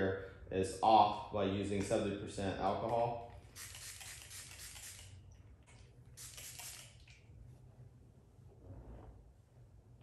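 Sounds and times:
spray bottle misting: 0:03.4 - 0:05.2, 0:06.2 - 0:07.1.

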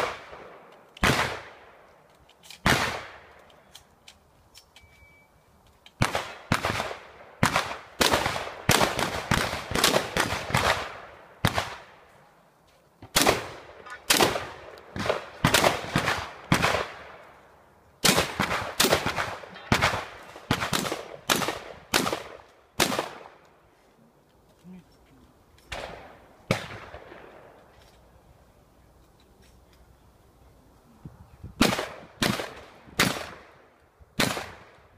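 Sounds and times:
shotgun shots: 0:00.0 - 0:01.6, 0:02.6 - 0:03.2, 0:06.0 - 0:11.9, 0:13.1 - 0:17.2, 0:18.0 - 0:23.4, 0:25.7 - 0:27.3, 0:31.6 - 0:33.6, 0:34.2 - 0:34.8.

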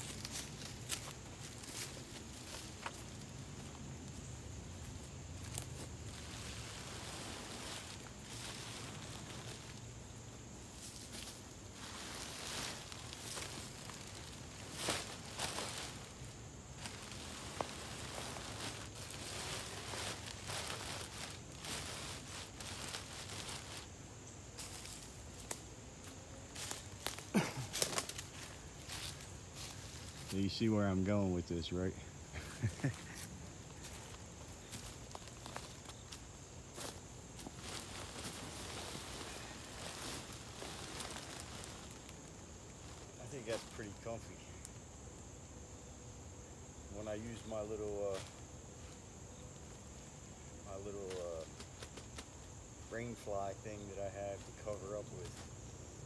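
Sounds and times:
footsteps in dry leaves: 0:00.0 - 0:44.5
plastic bags crinkling and rustling: 0:16.8 - 0:23.9, 0:36.8 - 0:44.0.

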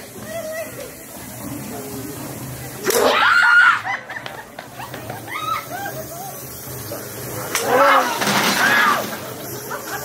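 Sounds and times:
crowd hum: 0:00.0 - 0:10.0.

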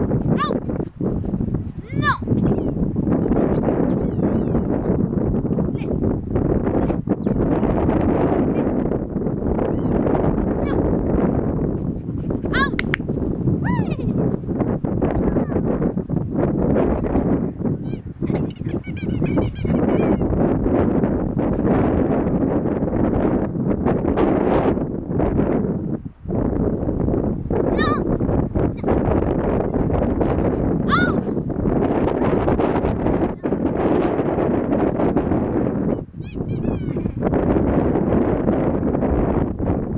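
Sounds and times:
wind rumbling on microphone: 0:00.0 - 0:39.9
dog giving excited cry: 0:12.5 - 0:12.9, 0:30.9 - 0:31.4, 0:36.2 - 0:37.1.

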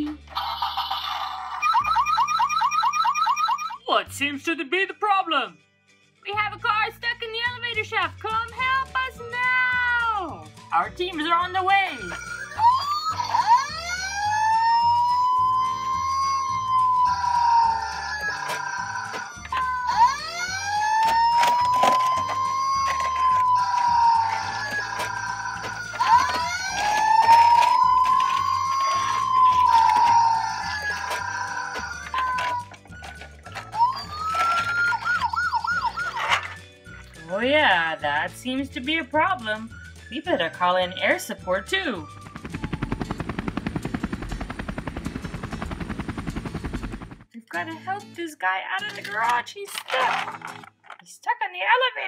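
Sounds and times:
background music: 0:00.0 - 0:52.0
toy electronic siren: 0:00.3 - 0:03.8, 0:11.9 - 0:36.5.

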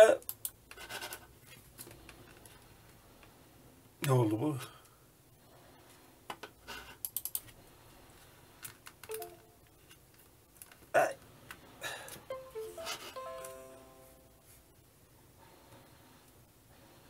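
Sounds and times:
falling electronic chimes: 0:12.3 - 0:14.4.

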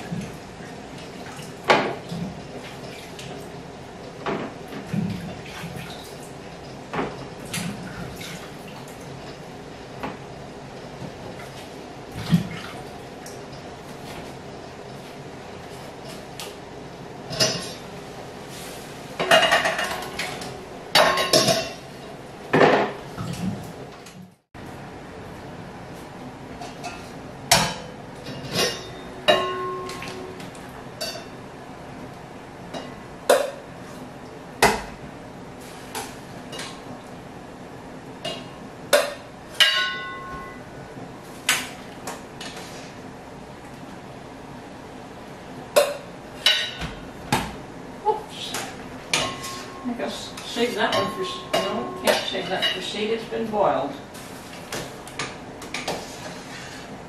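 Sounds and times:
metal pots clinking: 0:26.6 - 0:30.3, 0:38.2 - 0:40.6, 0:49.1 - 0:53.0.

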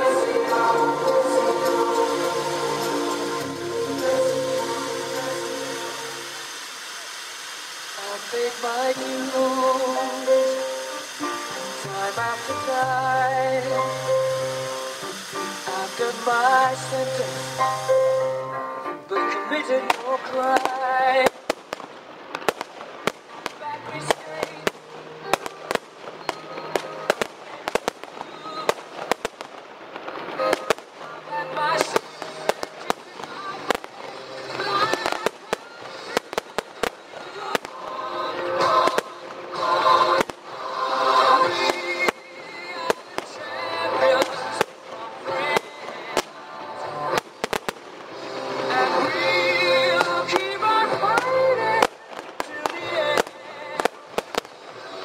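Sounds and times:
loud music playing: 0:00.0 - 0:06.5, 0:09.0 - 0:20.0, 0:37.6 - 0:51.9
fireworks bangs and crackles: 0:00.0 - 0:55.0.

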